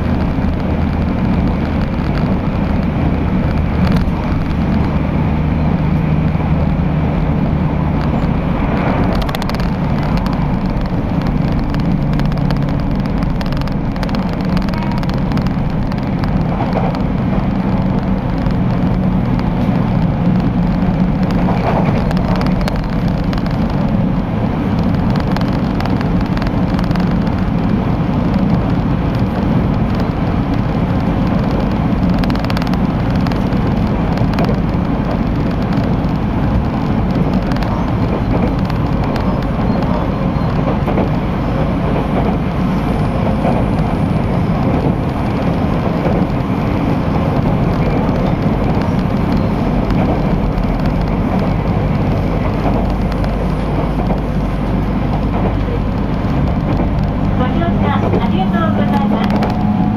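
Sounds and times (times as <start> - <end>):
train wheels rumbling on rails: 0.0 - 59.9.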